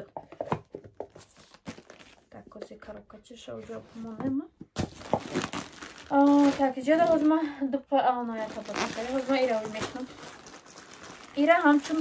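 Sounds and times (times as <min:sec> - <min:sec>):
plastic bag crinkling: 0:04.8 - 0:07.4, 0:08.3 - 0:12.0.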